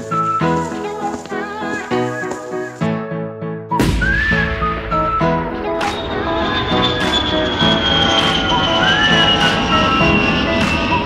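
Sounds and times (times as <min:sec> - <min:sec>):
whistled melody music: 0:00.0 - 0:11.0
deep bass: 0:03.8 - 0:10.3
sudden rush of noise: 0:03.8 - 0:11.0.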